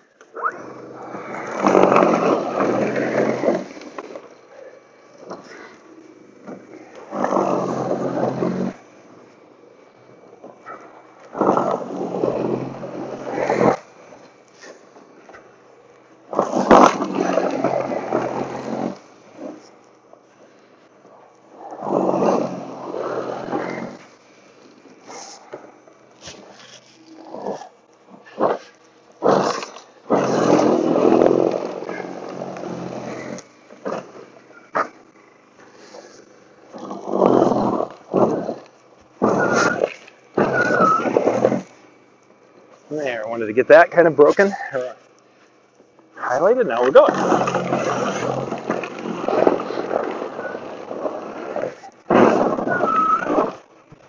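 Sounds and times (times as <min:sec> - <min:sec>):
snow blower surging: 0:00.3 - 0:15.6, 0:16.3 - 0:19.8, 0:21.5 - 0:27.4, 0:28.1 - 0:41.8, 0:46.3 - 0:53.6.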